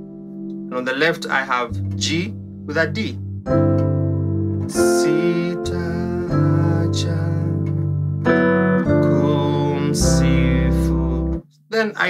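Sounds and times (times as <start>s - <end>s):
piano chords: 0.0s - 11.4s.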